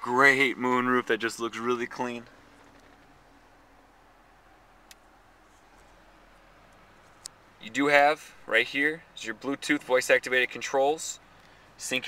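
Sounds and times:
car engine idling hum: 0.0s - 12.0s.

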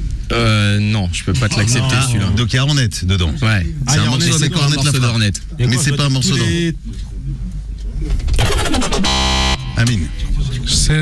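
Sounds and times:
voices: 0.3s - 8.1s
electronic game buzzer: 8.4s - 9.8s.

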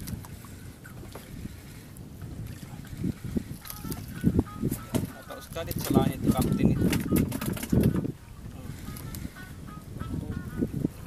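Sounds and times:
water moving against boat hull: 0.0s - 11.0s
wind buffeting microphone: 0.0s - 11.0s.

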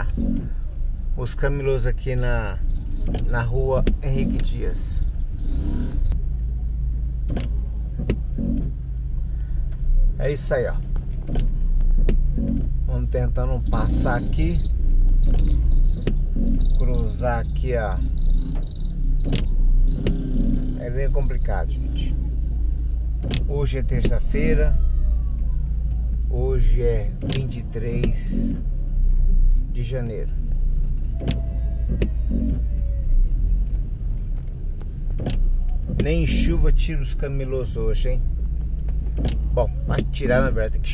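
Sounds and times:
truck engine rumbling: 0.0s - 40.9s
sharp clicks: 13.9s - 16.7s, 18.2s - 20.7s.

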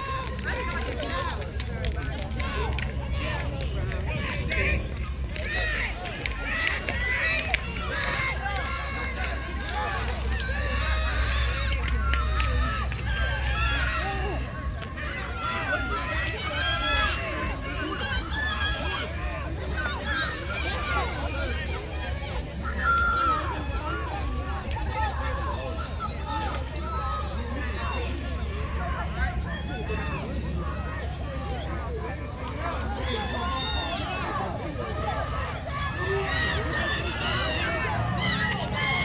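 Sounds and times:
people talking and calling out: 0.0s - 39.0s.

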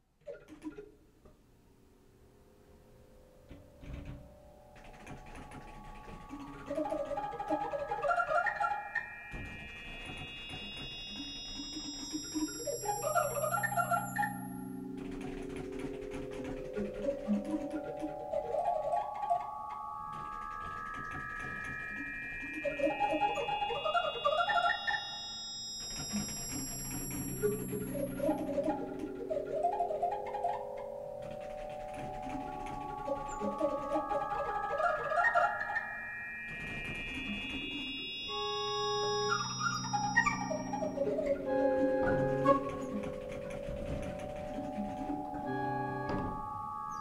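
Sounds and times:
pipe organ playing: 4.8s - 35.8s, 36.5s - 47.0s.

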